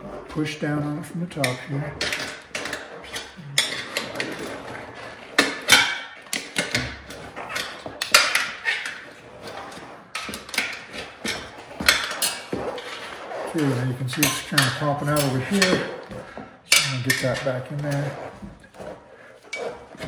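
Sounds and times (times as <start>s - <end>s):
rim and tire knocking and rubbing: 0.0s - 20.0s.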